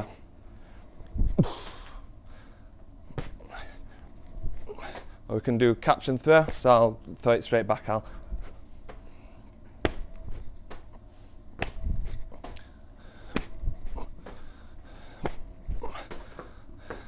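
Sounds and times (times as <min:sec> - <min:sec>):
ball slapping against hands: 0:03.0 - 0:03.4, 0:06.4 - 0:06.7, 0:08.4 - 0:14.5, 0:15.1 - 0:17.0.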